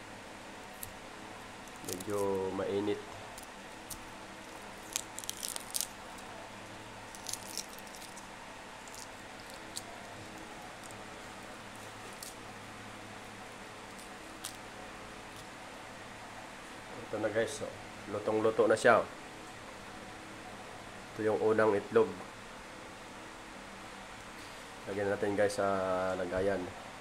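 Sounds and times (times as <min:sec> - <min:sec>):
eggshell crackling: 0:00.6 - 0:12.6, 0:13.8 - 0:15.6.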